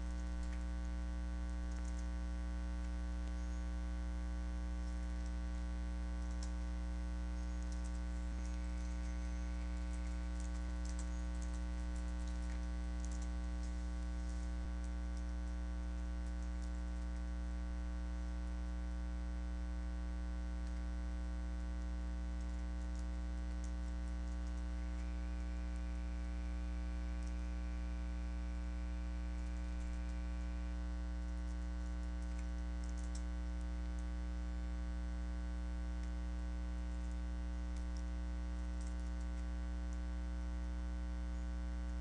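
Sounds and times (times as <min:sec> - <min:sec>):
electrical mains hum: 0:00.0 - 0:42.0
faint clicks: 0:06.2 - 0:06.6, 0:07.4 - 0:14.5, 0:31.5 - 0:33.3.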